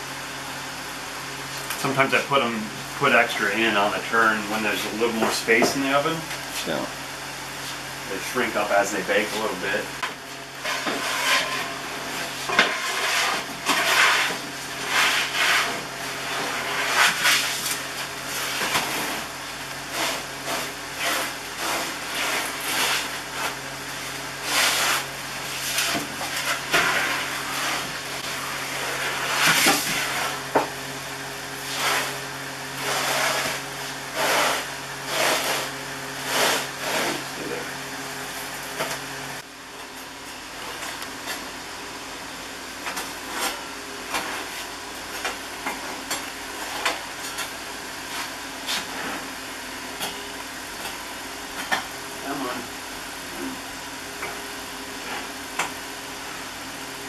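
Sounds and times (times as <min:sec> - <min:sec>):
low machine hum: 0:00.0 - 0:57.0
wooden peel scraping and knocking: 0:10.6 - 0:15.8.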